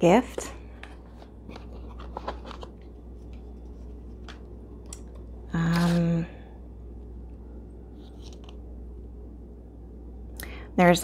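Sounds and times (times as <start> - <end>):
steady low hum: 0.0 - 11.0
paper and cardboard rustling: 1.0 - 4.3.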